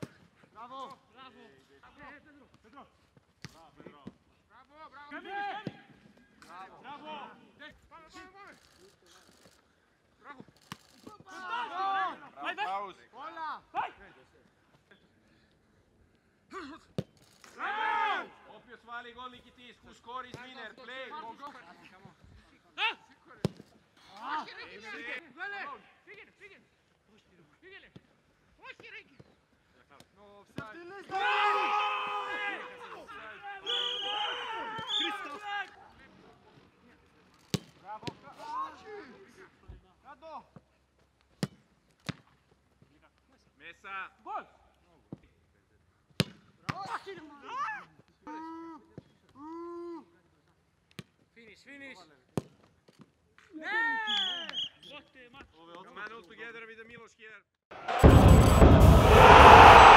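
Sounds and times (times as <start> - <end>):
footballers shouting: 11.2 - 12.7, 31.0 - 35.4, 57.7 - 59.9.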